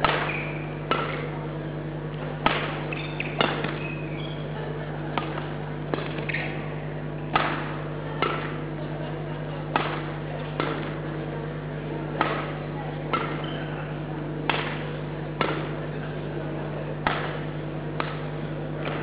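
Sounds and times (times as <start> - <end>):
racket hitting shuttlecock: 0.0 - 1.4, 2.4 - 4.4, 5.1 - 8.7, 9.7 - 11.2, 12.1 - 13.8, 14.4 - 15.8, 17.0 - 19.0
steady low hum: 0.0 - 19.0
shoe squeaks: 0.2 - 0.8, 2.9 - 4.6, 6.2 - 6.6, 13.4 - 13.8.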